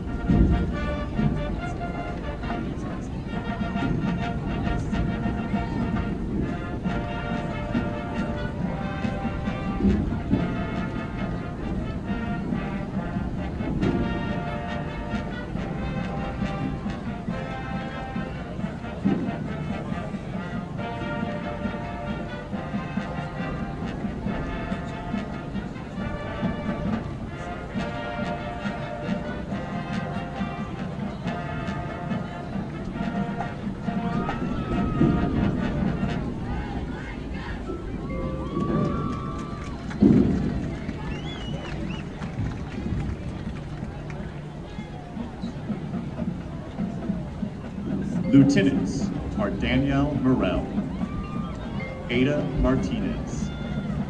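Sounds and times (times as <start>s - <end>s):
brass chords: 0.0s - 54.0s
marching drums: 0.0s - 54.0s.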